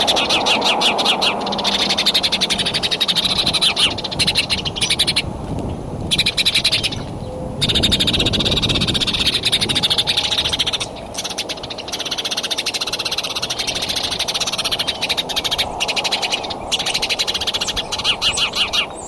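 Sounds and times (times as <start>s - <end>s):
frogs trilling: 0.0s - 5.3s, 6.1s - 19.0s.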